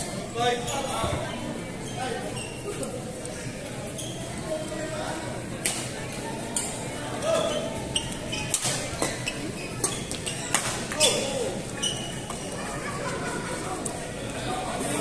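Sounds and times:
shoe squeaks on court floor: 1.8 - 2.8, 3.9 - 4.4, 7.2 - 12.5.

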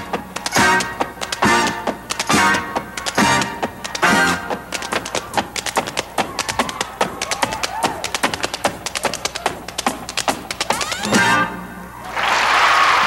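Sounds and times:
shoes tapping on wooden stage: 0.0 - 11.2
quiet backing music: 0.0 - 12.0.

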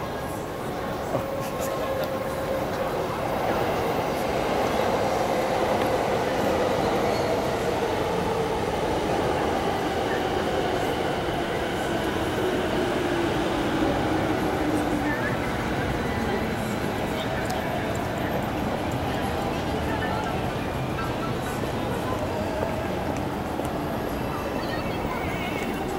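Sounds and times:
train wheels rumbling on track: 0.0 - 25.9.

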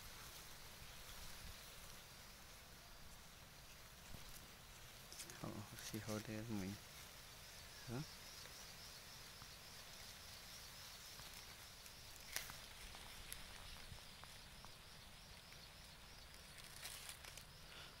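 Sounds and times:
faint outdoor ambience: 0.0 - 18.0.

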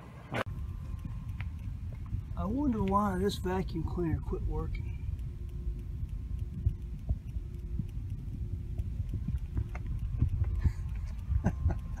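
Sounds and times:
faint steady hum: 0.0 - 12.0
low outdoor rumble: 0.0 - 12.0.

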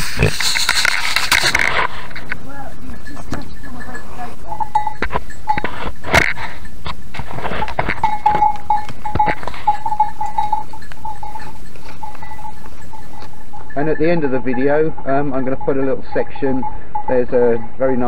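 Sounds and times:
goat bell ringing: 0.0 - 18.0.

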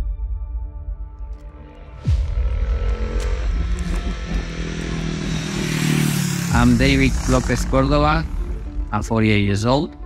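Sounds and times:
motorcycle engine running: 2.0 - 10.0.

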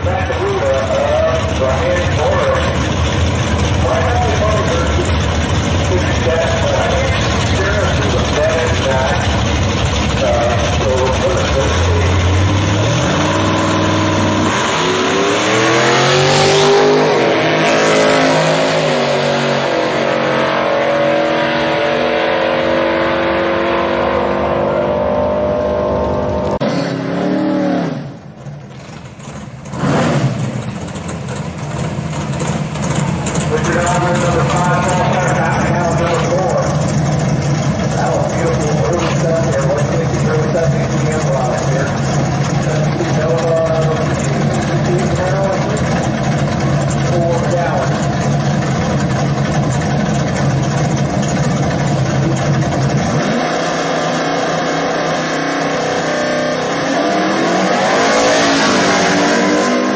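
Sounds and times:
drag racing cars idling: 0.0 - 20.9, 27.8 - 59.9
engine revving: 0.0 - 28.4, 29.1 - 59.9
cars launching at full throttle: 0.0 - 59.9.

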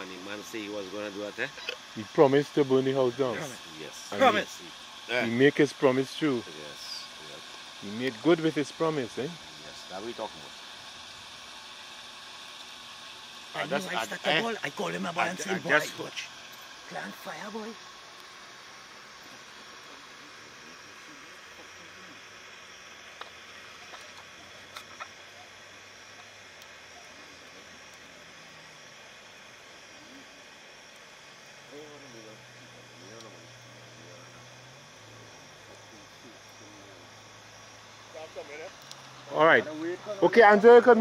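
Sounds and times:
steady hiss: 0.0 - 41.0
faint distant voices: 19.1 - 41.0
faint clicks: 38.8 - 39.1.

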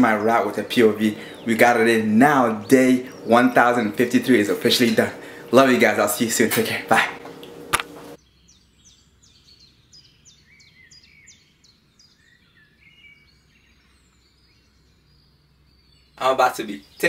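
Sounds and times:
low background hum: 0.0 - 8.2
birds chirping: 0.0 - 17.0.

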